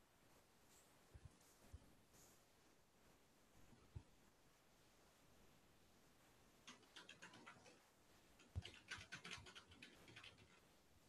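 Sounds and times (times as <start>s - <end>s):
light clicks and taps: 6.6s - 7.8s.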